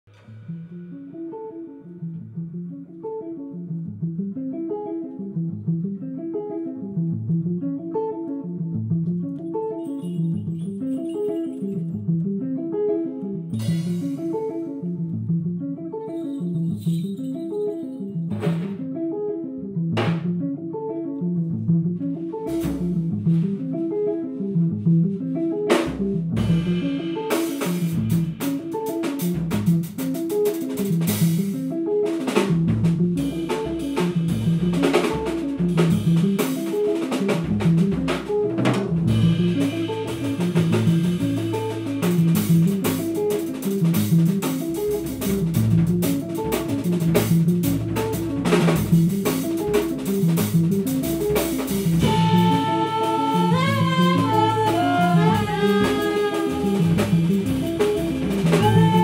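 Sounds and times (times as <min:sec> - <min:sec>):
guitar: 0:00.0 - 0:59.0
double bass: 0:05.3 - 0:06.0, 0:06.8 - 0:07.8, 0:08.4 - 0:09.4, 0:13.4 - 0:15.8, 0:21.2 - 0:28.6, 0:29.2 - 0:30.0, 0:32.4 - 0:36.4, 0:37.3 - 0:59.0
drum kit with cymbal hits: 0:13.5 - 0:14.8, 0:18.3 - 0:18.9, 0:20.0 - 0:20.4, 0:22.5 - 0:23.7, 0:25.7 - 0:59.0.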